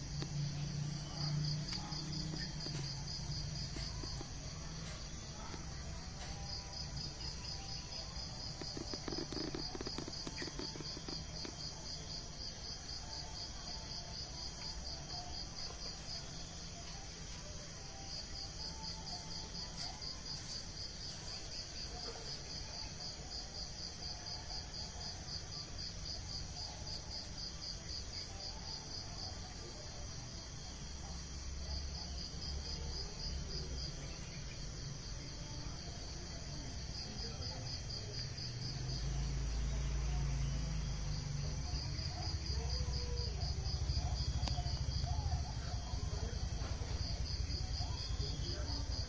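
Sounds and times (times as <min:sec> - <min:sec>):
insects trilling: 0:00.0 - 0:49.0.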